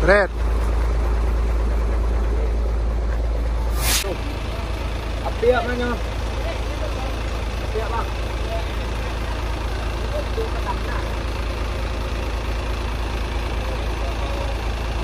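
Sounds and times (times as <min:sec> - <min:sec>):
truck diesel engine idling: 0:00.0 - 0:15.0.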